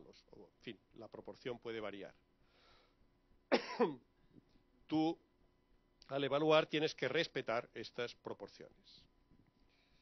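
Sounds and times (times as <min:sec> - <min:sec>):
man coughing into microphone: 0:03.5 - 0:04.1.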